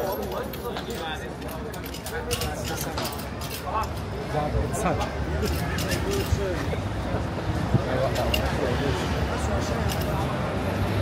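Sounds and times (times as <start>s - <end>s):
people talking: 0.0s - 10.5s.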